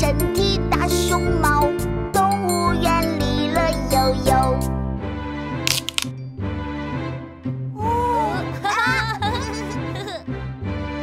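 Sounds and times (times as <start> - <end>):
cartoon backing music: 0.0 - 11.0
sharp cracking sound effects: 5.7 - 6.2.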